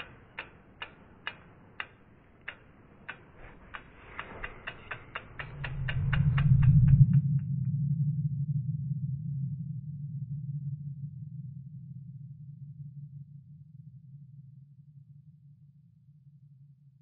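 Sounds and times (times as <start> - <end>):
sharp ticks: 0.0 - 7.5
low hum: 0.0 - 14.6.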